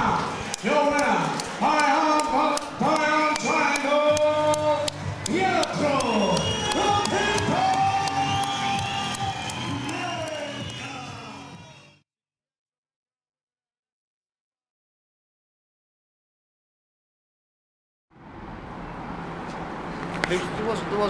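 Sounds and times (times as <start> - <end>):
announcer shouting: 0.0 - 11.9
crowd cheering and whooping: 0.0 - 12.0
music with a steady beat: 4.2 - 12.0.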